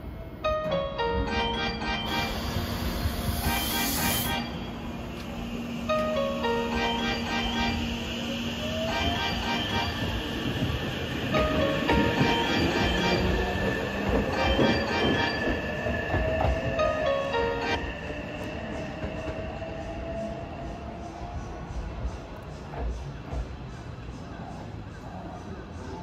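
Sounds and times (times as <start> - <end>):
another train arriving: 0.0 - 26.0
train motor whine rising: 2.0 - 11.3
air hiss: 2.1 - 6.0
wheels clattering on rails: 7.9 - 17.0.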